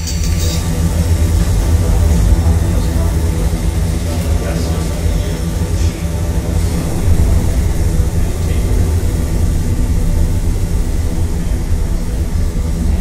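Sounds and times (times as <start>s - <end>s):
deep rumble with hiss: 0.0s - 13.0s.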